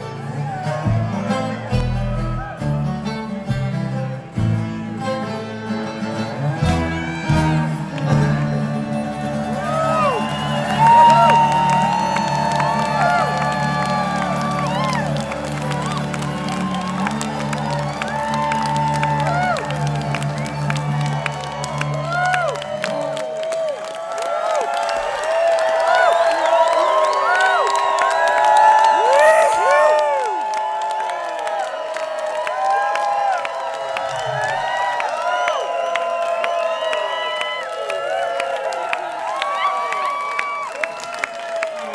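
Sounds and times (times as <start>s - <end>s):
crowd cheering and whooping: 0.0s - 2.9s, 6.2s - 41.9s.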